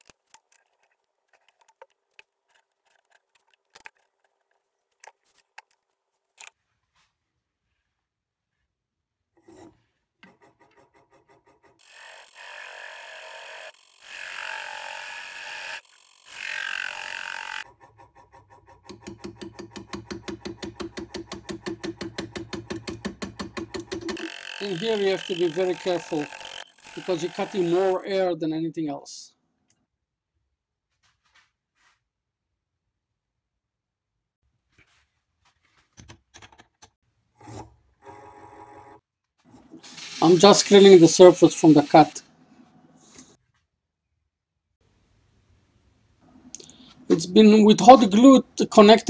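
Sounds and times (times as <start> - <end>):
lathe tool cutting wood: 11.8 - 17.6, 24.0 - 28.0, 39.9 - 42.2.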